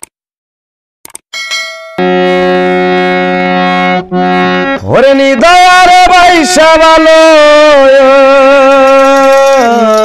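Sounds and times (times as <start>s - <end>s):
brief chime: 1.4s - 2.0s
harmonium held chord: 1.4s - 9.6s.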